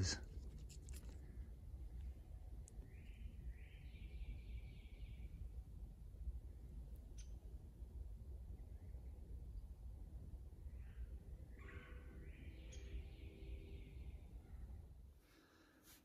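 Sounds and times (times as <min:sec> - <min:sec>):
distant bird singing: 0:01.2 - 0:15.5.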